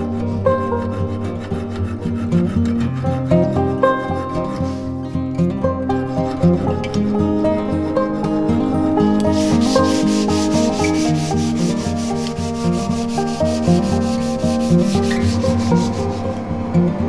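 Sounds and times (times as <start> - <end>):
plucked-string background music: 0.0 - 17.0
sandpaper rubbing on wood: 0.4 - 4.9, 9.1 - 16.4.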